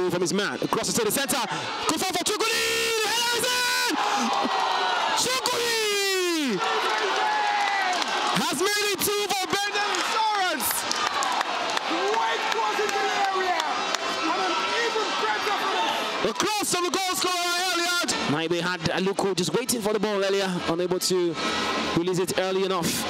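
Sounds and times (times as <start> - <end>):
stadium crowd noise: 0.0 - 23.0
man shouting excitedly: 0.9 - 4.1, 5.1 - 6.6, 8.4 - 10.8.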